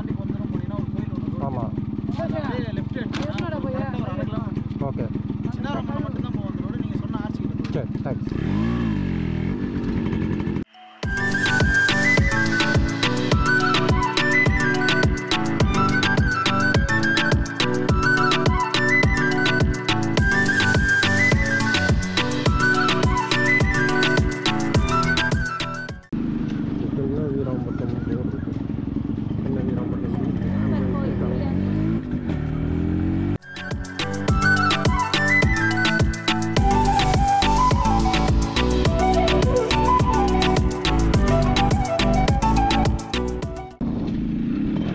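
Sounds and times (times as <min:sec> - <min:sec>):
motorcycle engine running: 0:00.0 - 0:44.9
background music: 0:10.7 - 0:26.1, 0:33.4 - 0:43.8.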